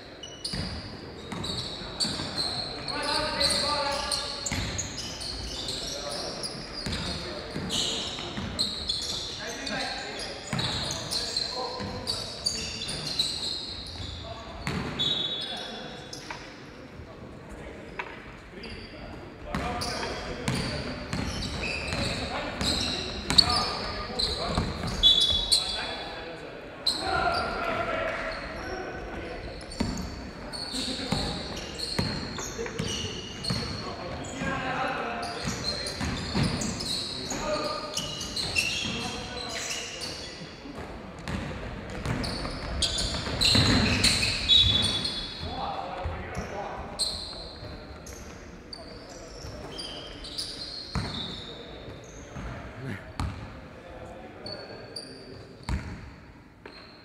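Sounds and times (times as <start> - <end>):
sneaker squeaks: 0.0 - 16.6, 17.9 - 26.2, 26.8 - 53.5, 54.4 - 57.0
basketball bouncing on court: 4.5 - 4.8, 14.6 - 14.9, 19.5 - 19.8, 20.5 - 23.5, 40.8 - 45.0, 53.2 - 53.5, 55.7 - 56.0.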